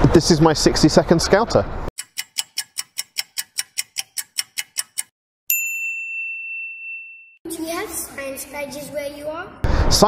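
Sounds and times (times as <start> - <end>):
clock ticking: 2.0 - 5.1
bright bell ding: 5.5 - 7.4.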